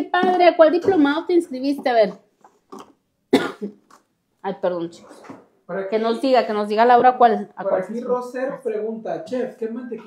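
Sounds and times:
woman coughing: 0.0 - 0.6, 3.3 - 3.8.

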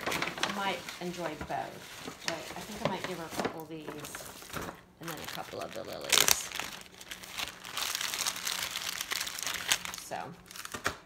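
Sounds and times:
paper bag crinkling: 0.0 - 11.0.

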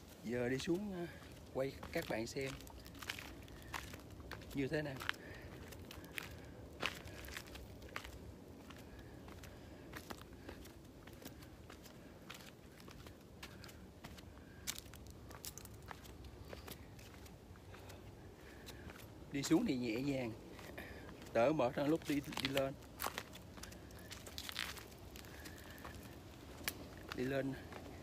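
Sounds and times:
footsteps on rock and grit: 0.0 - 28.0.

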